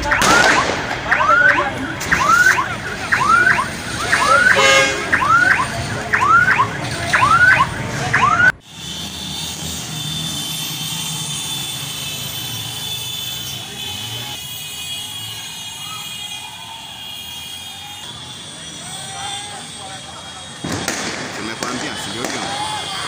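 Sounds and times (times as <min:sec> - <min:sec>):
electronic siren whooping: 0:00.0 - 0:08.6
street noise: 0:00.0 - 0:23.0.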